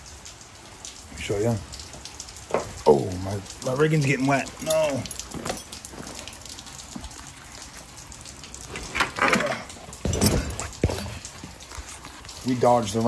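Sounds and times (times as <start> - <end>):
steady rain falling: 0.0 - 13.0
rope bags rustling and knocking: 8.8 - 11.6.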